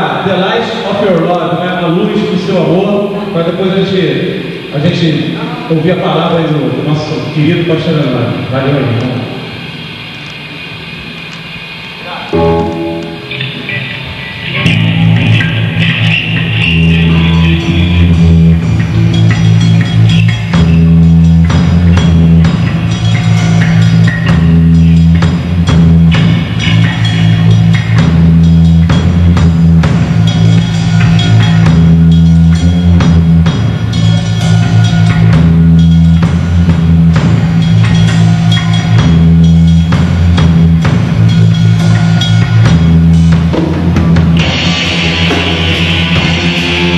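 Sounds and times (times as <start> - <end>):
low bass notes: 0.0 - 46.9
heavy metal band playing live: 11.8 - 46.9.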